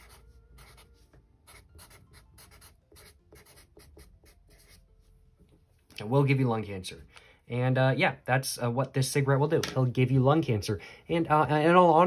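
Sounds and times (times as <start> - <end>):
marker writing on paper: 0.0 - 4.8.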